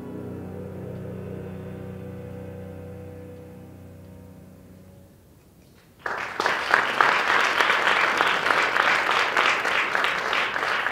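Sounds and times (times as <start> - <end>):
piano chord: 0.0 - 5.2
low bowed strings: 0.0 - 5.3.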